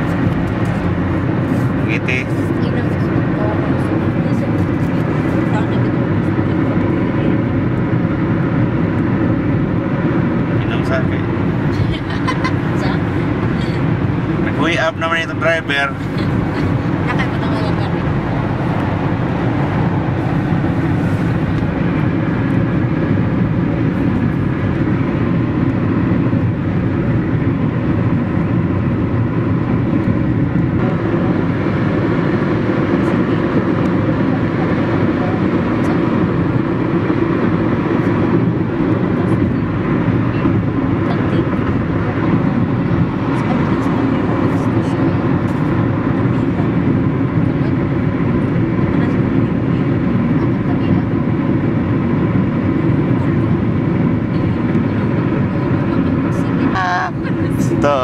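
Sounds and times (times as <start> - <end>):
car road and engine noise: 0.0 - 58.0.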